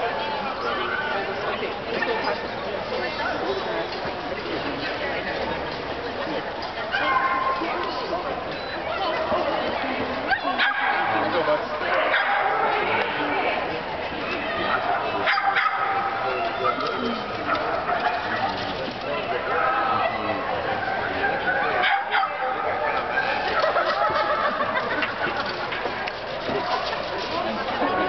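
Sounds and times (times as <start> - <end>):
people talking: 0.0 - 28.0
dog barking: 6.9 - 7.6, 10.3 - 11.2, 12.0 - 12.8, 15.2 - 16.9, 21.8 - 22.8.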